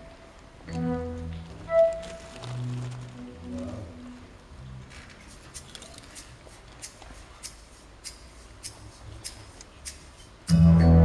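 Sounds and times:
electronic keyboards held notes: 0:00.0 - 0:04.5, 0:10.5 - 0:11.0.

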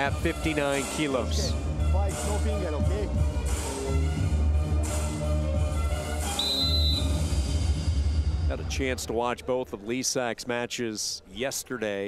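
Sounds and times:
referee's whistle: 0:06.3 - 0:07.2.

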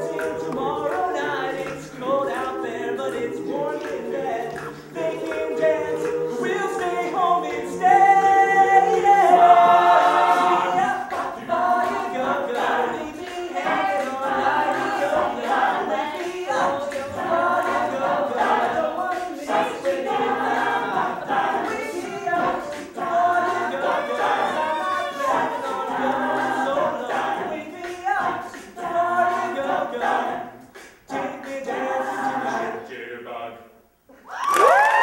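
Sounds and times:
a cappella group singing: 0:00.0 - 0:33.9.

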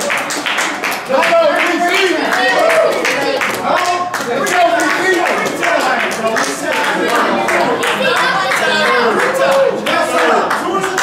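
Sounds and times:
crowd clapping in rhythm: 0:00.0 - 0:11.0.

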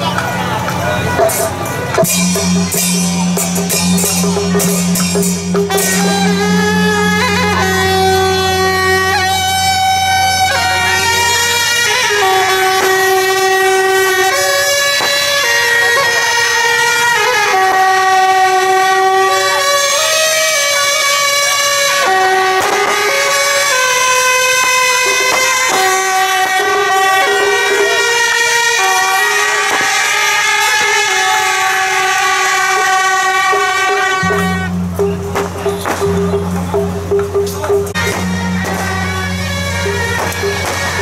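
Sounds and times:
brass band holding a loud chord: 0:00.0 - 0:37.1, 0:37.8 - 0:41.0.

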